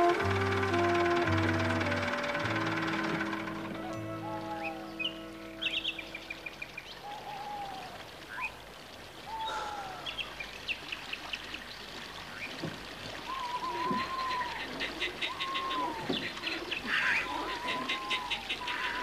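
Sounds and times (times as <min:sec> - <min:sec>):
soft music with long held notes: 0:00.0 - 0:06.8
birds whistling and chirping: 0:03.7 - 0:08.5, 0:13.2 - 0:19.0.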